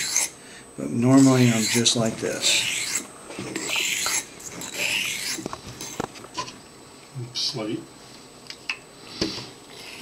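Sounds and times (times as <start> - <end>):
razor rasping on whetstone: 0.0 - 0.3, 1.2 - 6.0.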